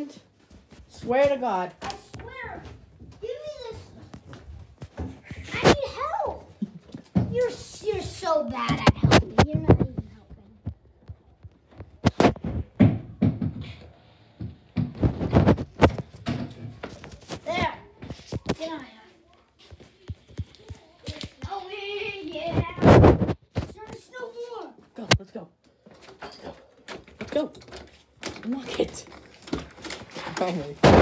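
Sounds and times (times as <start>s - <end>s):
knocks and thuds of handling: 11.8s - 13.8s.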